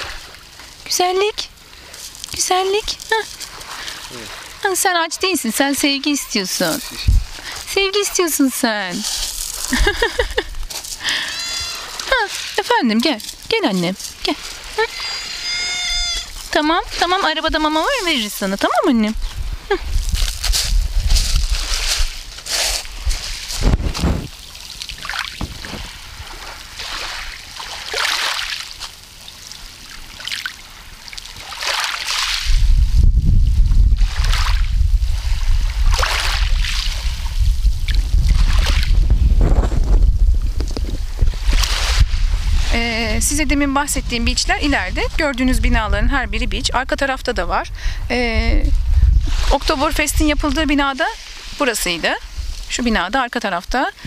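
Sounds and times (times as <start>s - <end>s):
waves washing over pebbles: 0.0s - 15.3s, 16.2s - 45.5s, 49.3s - 54.0s
wind buffeting microphone: 5.3s - 12.2s, 15.8s - 24.4s, 25.4s - 26.5s, 32.4s - 53.2s
cat meowing: 11.2s - 12.1s, 14.9s - 16.4s.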